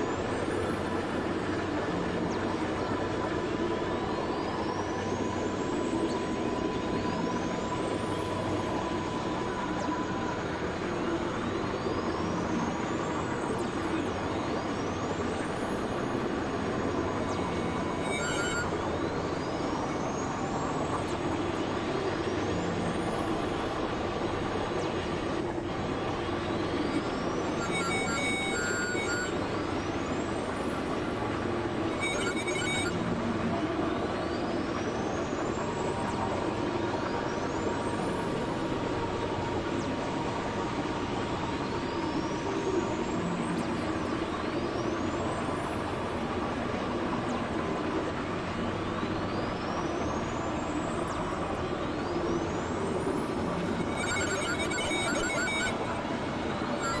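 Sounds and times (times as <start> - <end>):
dense electronic drone: 0.0 - 57.0
steady high tone: 16.1 - 20.0, 26.1 - 29.6, 31.1 - 33.2, 53.3 - 57.0
electronic bleeps: 16.9 - 18.8, 26.6 - 29.4, 31.7 - 33.1, 53.6 - 56.1, 56.7 - 57.0.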